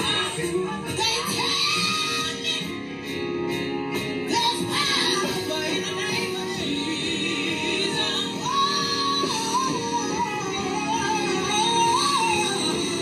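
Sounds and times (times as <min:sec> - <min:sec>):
woman singing gospel: 0:00.0 - 0:02.8, 0:04.3 - 0:13.0
musical accompaniment: 0:00.0 - 0:13.0.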